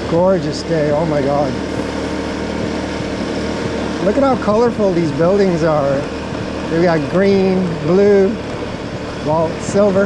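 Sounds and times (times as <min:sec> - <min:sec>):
road and wind noise: 0:00.0 - 0:10.0
scooter engine hum: 0:00.0 - 0:10.0.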